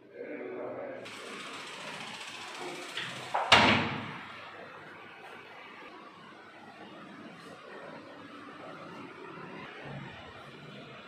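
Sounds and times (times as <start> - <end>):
door banging shut: 3.4 - 4.2.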